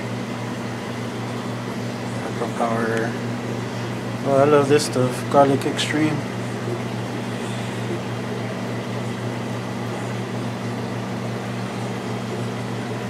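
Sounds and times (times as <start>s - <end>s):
low mechanical droning hum: 0.0s - 13.0s.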